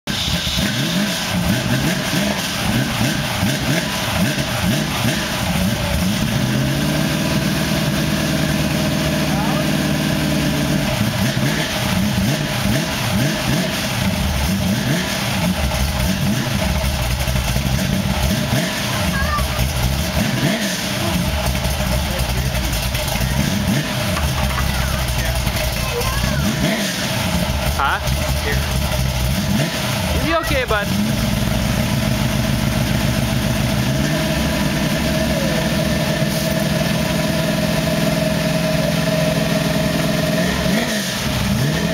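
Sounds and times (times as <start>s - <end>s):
car engine idling and revving: 0.0s - 41.9s.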